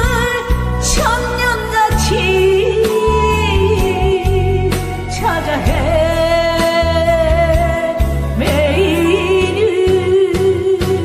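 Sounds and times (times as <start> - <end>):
backing track with bass and drums: 0.0 - 11.0
woman singing into microphone: 0.0 - 11.0.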